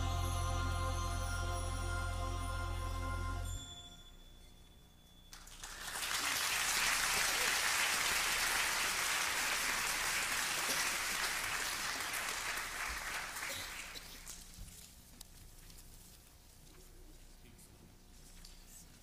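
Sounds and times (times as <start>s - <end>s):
congregation applauding: 5.3s - 14.4s.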